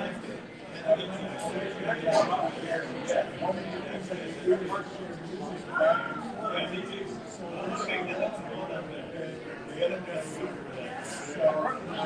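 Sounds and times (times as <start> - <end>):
chatter of people talking: 0.0 - 12.0.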